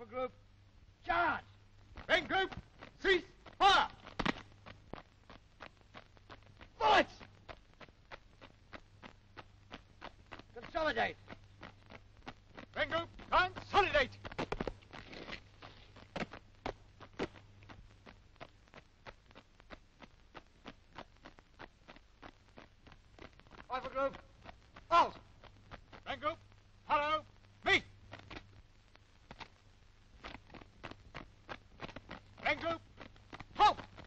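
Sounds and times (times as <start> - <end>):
boots striking hard ground: 1.9 - 34.0.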